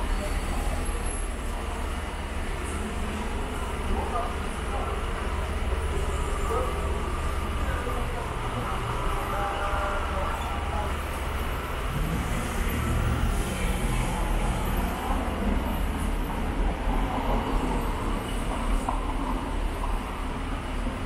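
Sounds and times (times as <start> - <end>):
faint voices: 0.0 - 15.7
low traffic rumble: 0.0 - 21.0.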